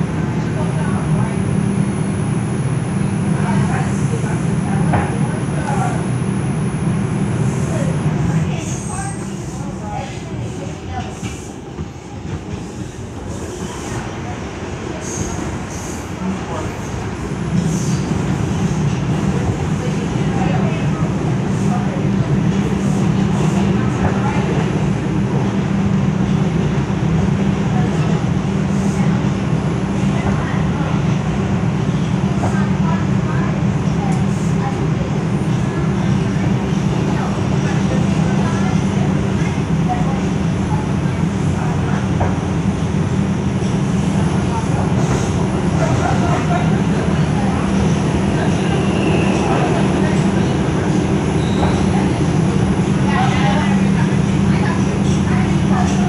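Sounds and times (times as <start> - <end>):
subway car wheels rumbling on rails: 0.0 - 56.0.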